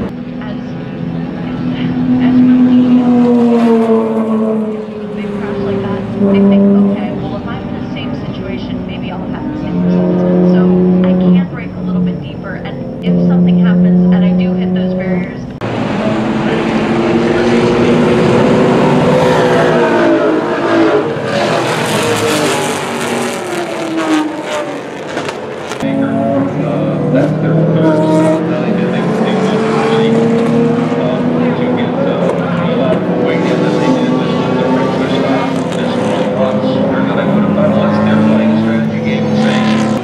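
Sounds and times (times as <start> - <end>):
race car engine holding steady note: 0.0 - 40.0
race cars passing at speed: 0.0 - 40.0.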